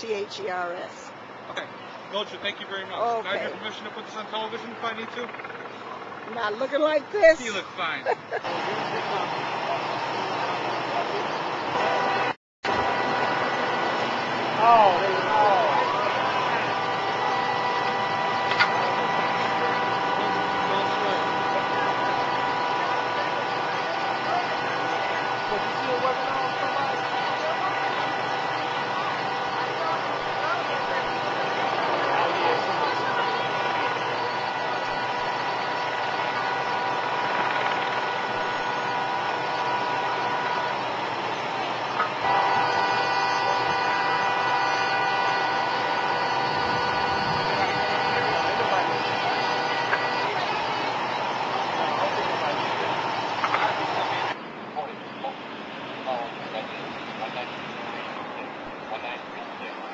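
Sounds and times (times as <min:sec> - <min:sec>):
faint voices: 0:00.0 - 0:59.9
engine idling: 0:00.9 - 0:59.9
motor whine: 0:01.1 - 0:54.4.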